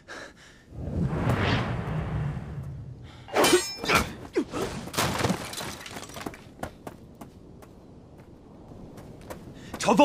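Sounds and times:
shattering crash: 4.9s - 6.4s.

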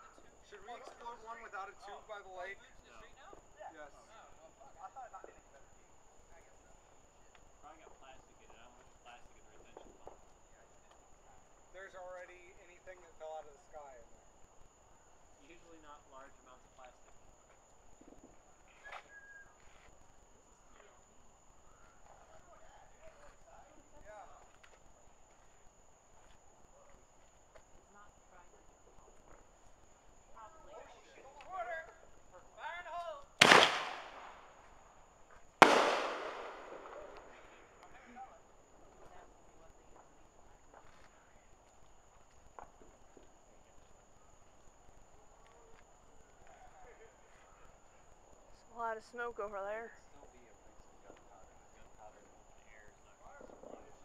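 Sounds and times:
faint distant voices: 0.0s - 54.0s
loud firework bangs echoing: 33.4s - 34.6s, 35.6s - 37.7s.

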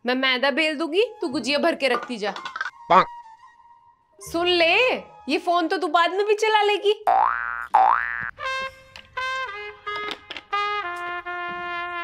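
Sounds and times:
cartoon boing effects: 7.1s - 8.3s.

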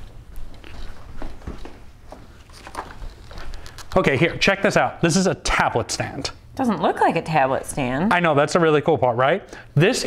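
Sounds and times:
footsteps: 0.0s - 4.2s.

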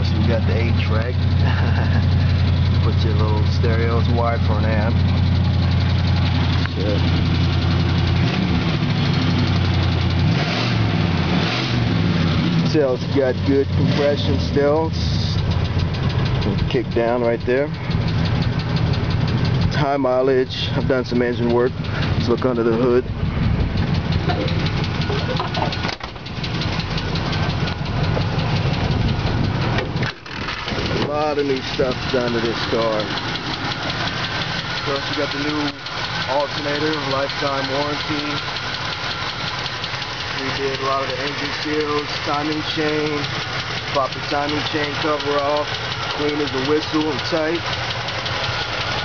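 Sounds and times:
car engine idling: 0.0s - 49.0s
fast engine ticking: 0.0s - 49.0s.

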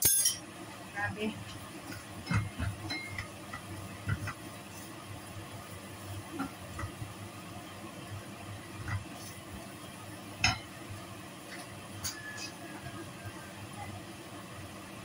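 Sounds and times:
food sizzling in a pan: 0.0s - 15.0s.

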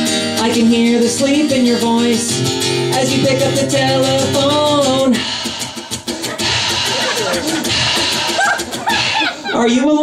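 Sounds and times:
acoustic guitar strumming: 0.0s - 9.9s.

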